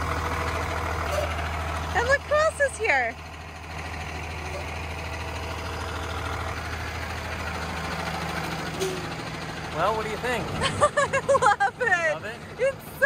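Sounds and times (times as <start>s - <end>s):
bus engine idling: 0.0s - 13.0s.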